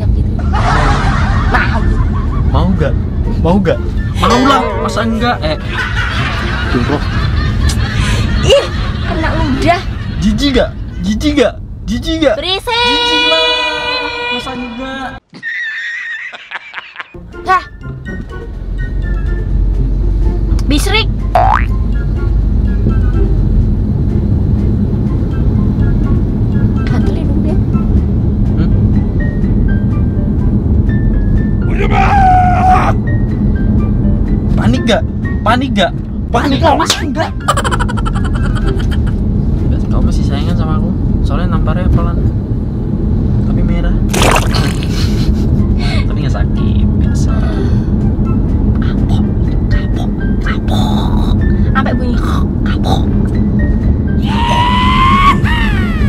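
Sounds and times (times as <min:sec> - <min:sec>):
low rumble: 0:00.0 - 0:12.5
background music: 0:00.0 - 0:15.2, 0:17.2 - 0:43.3, 0:44.0 - 0:56.0
cartoon boing: 0:21.4 - 0:21.8.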